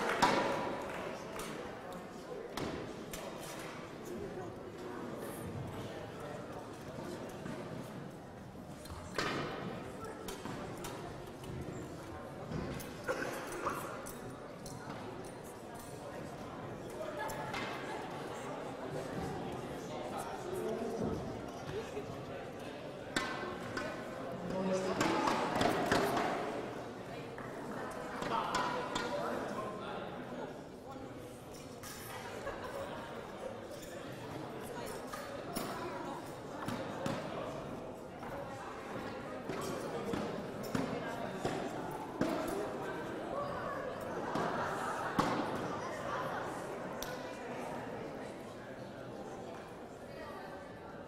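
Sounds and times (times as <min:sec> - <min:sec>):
murmur of voices echoing: 0:00.0 - 0:51.0.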